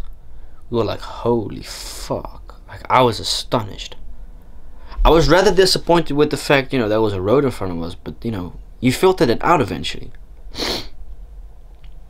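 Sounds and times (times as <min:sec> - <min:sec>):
person breathing sharply: 0:10.5 - 0:11.0.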